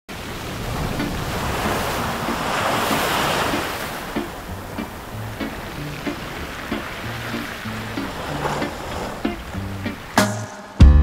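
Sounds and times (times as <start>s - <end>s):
ocean surf on beach: 0.1s - 10.8s.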